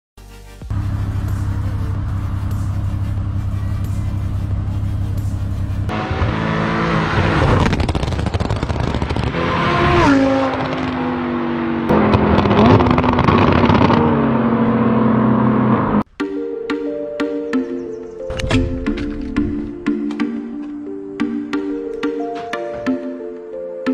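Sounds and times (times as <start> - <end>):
car engine idling and accelerating: 0.6 - 16.1.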